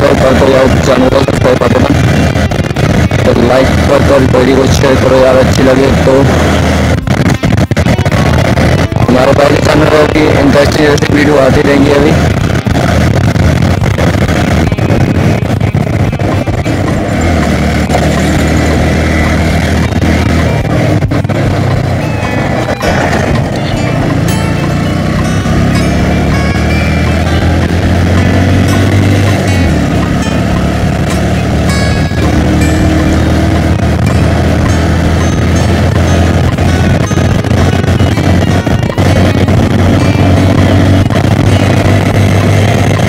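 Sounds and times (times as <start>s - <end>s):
background music: 0.0s - 43.0s
motorcycle running: 0.0s - 43.0s
wind noise: 0.0s - 43.0s.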